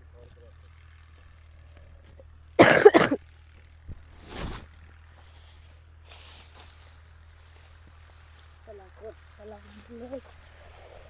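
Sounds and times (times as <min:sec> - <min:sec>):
person coughing: 0:02.6 - 0:03.2.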